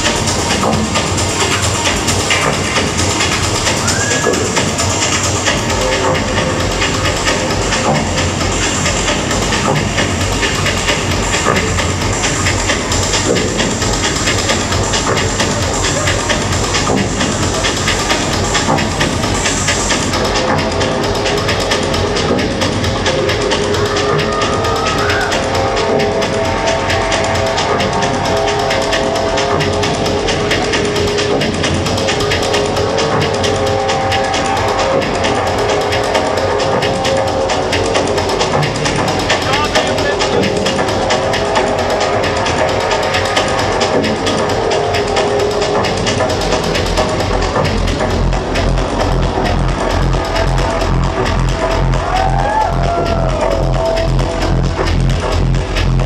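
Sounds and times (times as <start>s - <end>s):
dub techno with steady beat: 0.0s - 56.0s.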